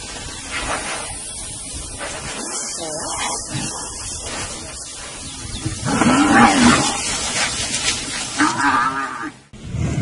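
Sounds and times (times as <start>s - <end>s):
buffalo calling low: 8.4s - 9.4s.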